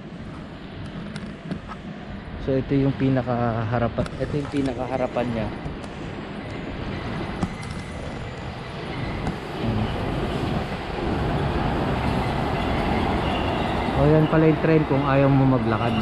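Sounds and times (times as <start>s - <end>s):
monorail train rumbling overhead: 0.0s - 16.0s.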